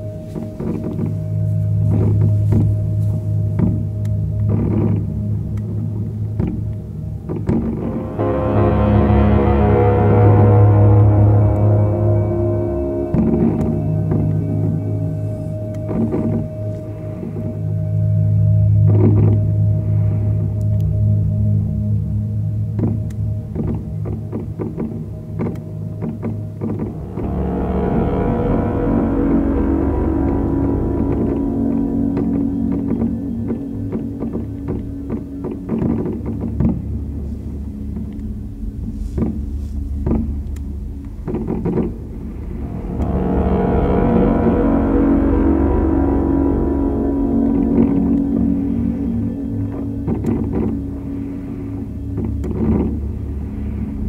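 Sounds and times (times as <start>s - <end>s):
steady low rumble: 0.0s - 54.0s.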